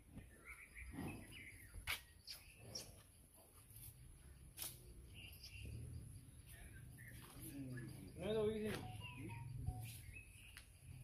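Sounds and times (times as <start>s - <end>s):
faint chirps: 0.0s - 11.0s.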